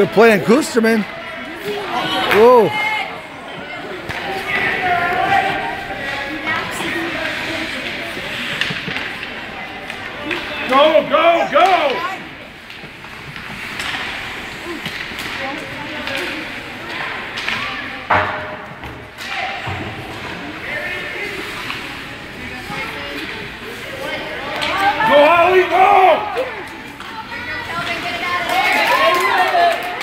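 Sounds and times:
skating and stick noise: 0.0s - 30.0s
spectators' voices: 0.0s - 30.0s
people shouting: 24.7s - 26.6s.

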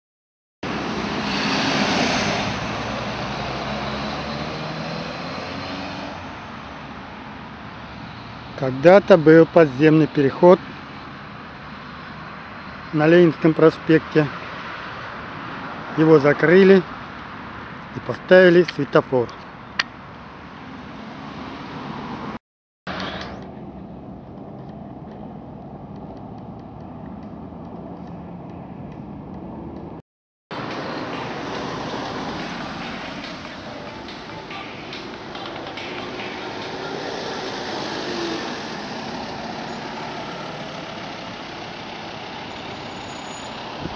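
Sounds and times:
vehicle passing: 0.7s - 9.2s, 20.0s - 22.4s, 23.1s - 43.9s.

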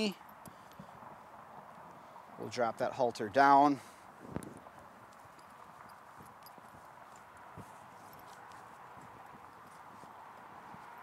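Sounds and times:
light clicks of halter: 0.2s - 0.9s, 4.3s - 11.0s.

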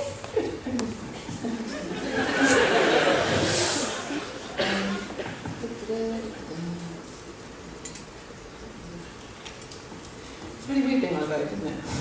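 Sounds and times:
low hum of a hall: 0.0s - 12.0s.

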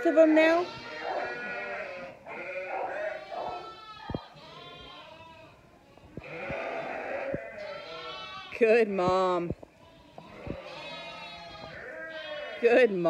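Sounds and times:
sheep and lambs bleating: 0.0s - 13.0s.

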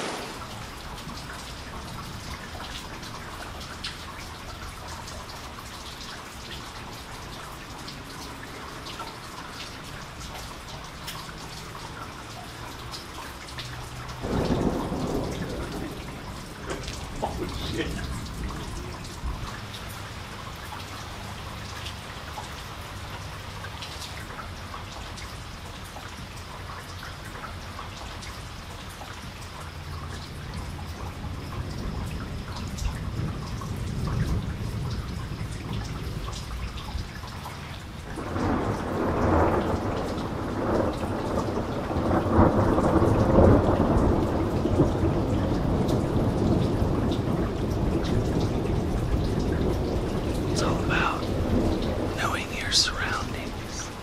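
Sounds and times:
thunder rolling: 0.0s - 2.1s, 14.2s - 19.6s, 38.2s - 54.0s
steady rain with drips: 0.0s - 54.0s.

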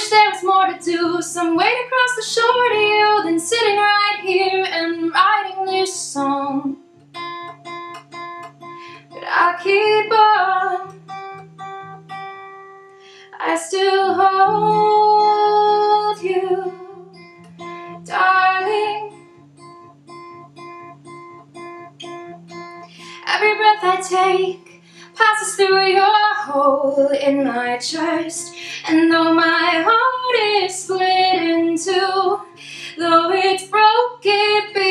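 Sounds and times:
woman singing: 0.0s - 6.8s, 8.8s - 11.0s, 13.2s - 17.2s, 17.9s - 19.2s, 22.9s - 34.9s
acoustic guitar picking: 0.0s - 34.9s.

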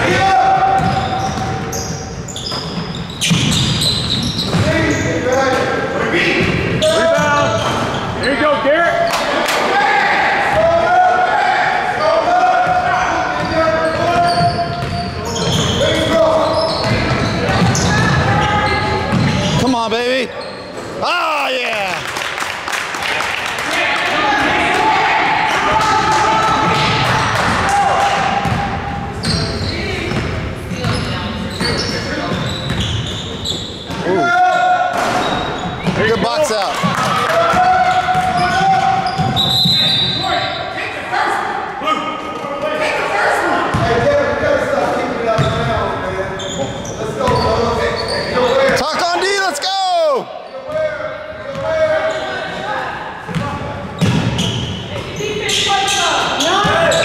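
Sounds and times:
sneakers squeaking on floor: 0.1s - 9.2s, 12.6s - 21.0s, 28.4s - 40.8s, 43.7s - 44.1s, 45.3s - 49.0s, 50.4s - 57.0s
basketball bouncing on court: 0.6s - 4.9s, 13.4s - 15.8s, 28.2s - 29.5s, 30.1s - 33.2s, 36.8s - 39.9s, 43.7s - 44.0s, 45.4s - 45.7s, 53.3s - 55.1s.

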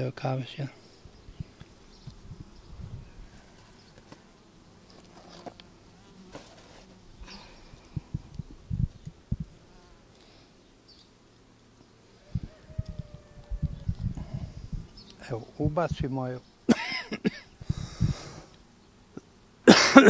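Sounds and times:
honeybees buzzing: 0.0s - 20.0s.

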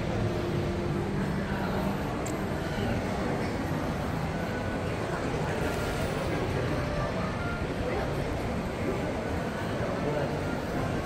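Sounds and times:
shopping mall background rumble: 0.0s - 11.0s.

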